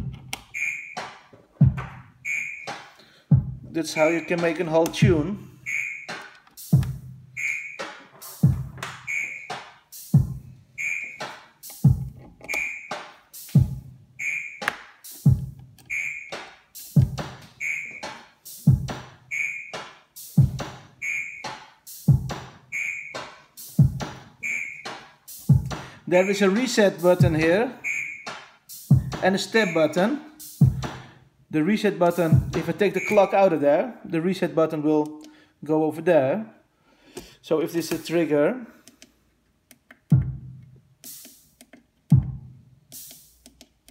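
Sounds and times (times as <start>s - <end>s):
electronic drum pattern: 0.0s - 31.1s, 32.2s - 33.4s, 40.1s - 43.5s
low kick hits: 1.6s - 2.0s.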